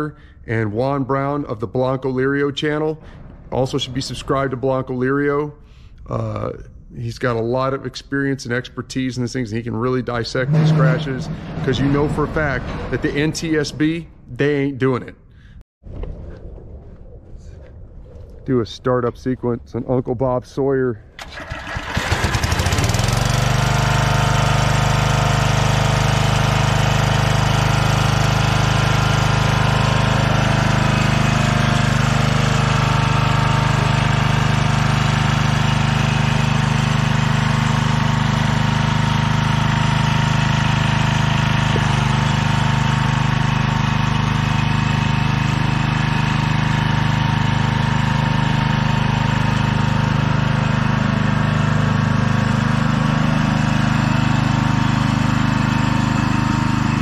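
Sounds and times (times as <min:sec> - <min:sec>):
lawn mower engine running: 0:09.6 - 0:14.6, 0:21.2 - 0:57.0.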